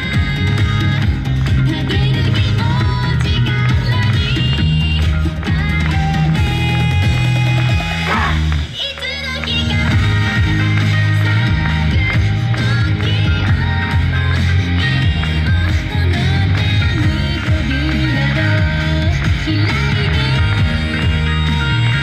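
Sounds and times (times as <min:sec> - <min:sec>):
dance music with heavy bass beat: 0:00.0 - 0:22.0.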